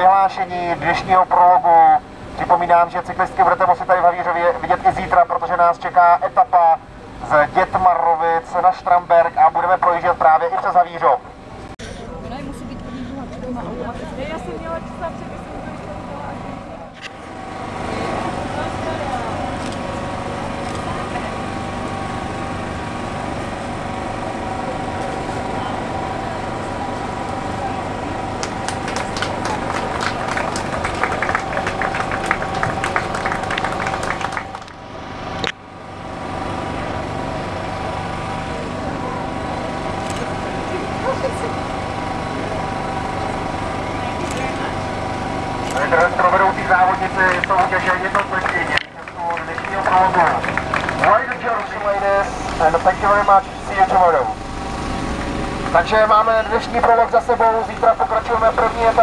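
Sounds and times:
steady hum: 0.0s - 59.0s
crowd clapping: 28.2s - 35.0s, 45.7s - 53.7s.

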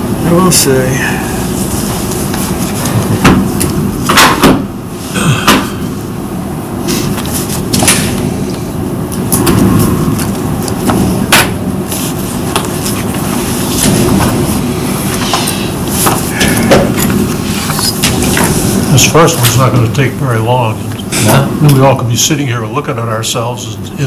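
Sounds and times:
low room rumble: 0.0s - 24.0s
paper shuffling: 11.9s - 16.3s.

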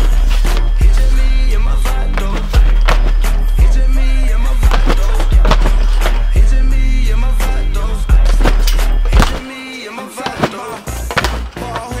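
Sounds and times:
background music with bass line: 0.0s - 12.0s.

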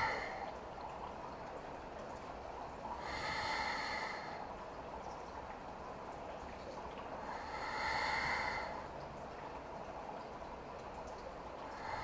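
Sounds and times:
woman breathing through nose: 3.0s - 4.4s, 7.3s - 8.8s.

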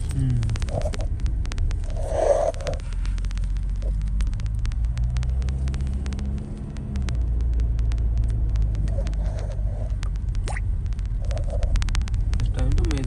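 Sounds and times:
car engine and road noise: 0.0s - 13.0s
faint clicks: 0.0s - 13.0s.

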